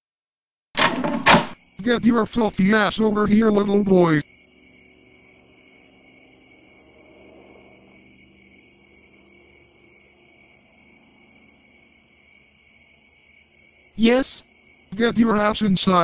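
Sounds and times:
crickets chirping: 0:01.4 - 0:16.0.

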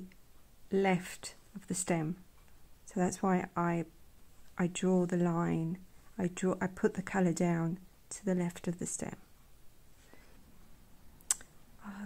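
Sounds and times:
sharp click: 0:11.3 - 0:11.5.

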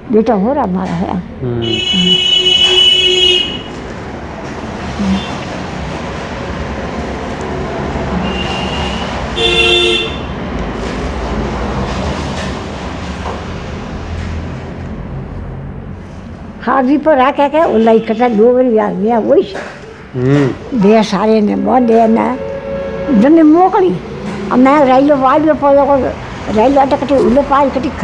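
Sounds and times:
street traffic noise: 0:00.0 - 0:28.0
vehicle horns tooting: 0:01.6 - 0:03.8, 0:05.0 - 0:05.5, 0:08.1 - 0:10.4, 0:17.6 - 0:18.9, 0:21.6 - 0:25.1.

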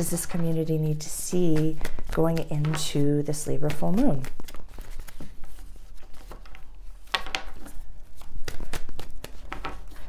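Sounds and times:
cards being shuffled by hand: 0:00.0 - 0:10.0.

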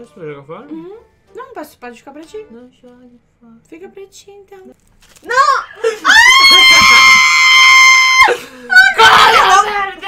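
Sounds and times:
woman screaming: 0:05.3 - 0:09.8.

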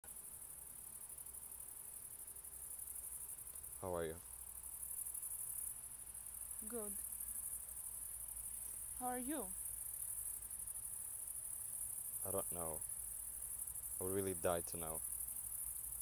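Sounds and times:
crickets chirping: 0:00.0 - 0:16.0.

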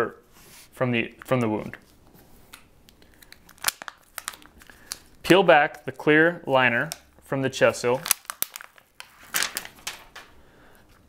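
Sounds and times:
plastic dressing crinkling: 0:01.1 - 0:10.4.

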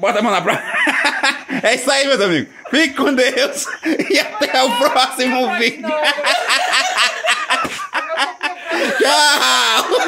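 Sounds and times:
people laughing: 0:00.2 - 0:10.0.

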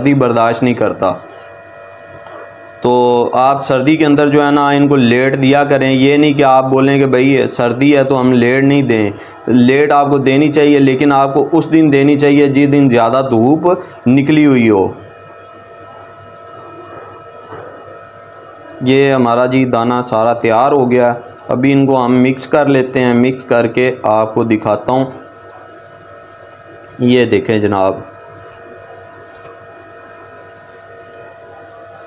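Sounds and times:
steady background hum: 0:00.0 - 0:32.0.

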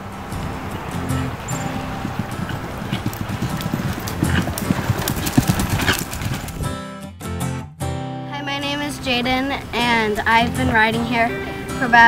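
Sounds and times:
horse hooves on dirt trail: 0:00.0 - 0:06.8
background music: 0:00.0 - 0:12.0.

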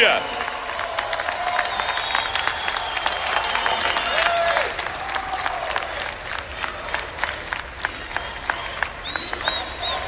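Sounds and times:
crowd applauding: 0:00.0 - 0:10.0
individual claps close by: 0:00.2 - 0:10.0.

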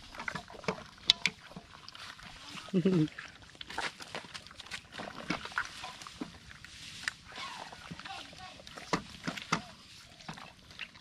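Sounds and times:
wet squelches of kneading: 0:00.0 - 0:11.0.

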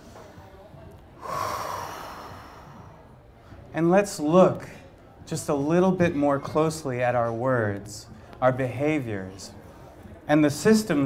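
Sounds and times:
breath blown into microphone: 0:01.2 - 0:03.6.

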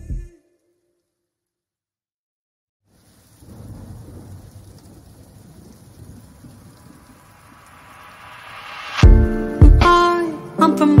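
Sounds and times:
rain-like hiss: 0:02.8 - 0:11.0
low thunder-like rumble: 0:03.2 - 0:09.2
rising sweep: 0:07.2 - 0:10.6.

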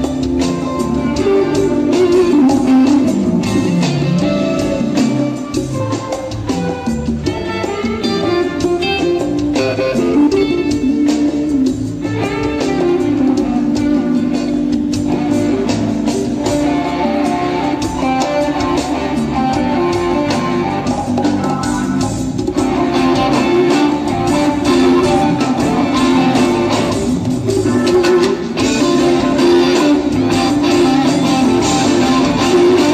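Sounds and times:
electric guitar playing: 0:00.0 - 0:32.9
live band music: 0:00.0 - 0:32.9.

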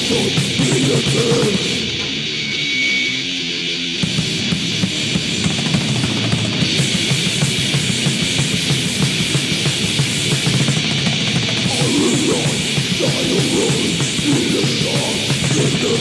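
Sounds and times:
metal drums: 0:00.0 - 0:02.7, 0:03.9 - 0:16.0
distorted electric guitars: 0:00.0 - 0:16.0.

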